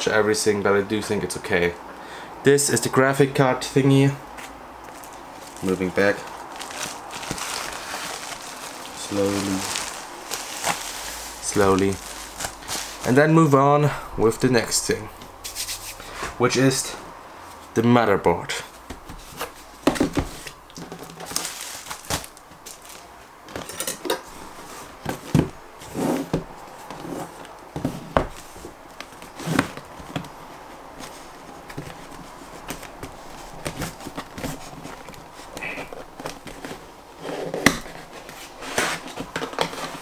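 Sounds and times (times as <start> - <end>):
cardboard box being handled: 4.9 - 13.3, 18.8 - 23.0.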